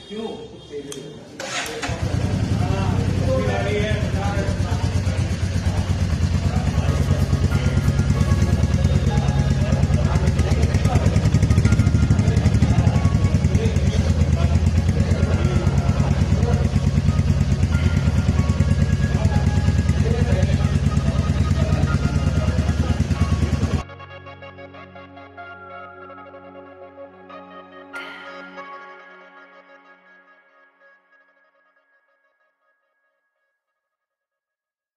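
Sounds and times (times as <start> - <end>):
motorcycle engine idling: 1.5 - 23.8.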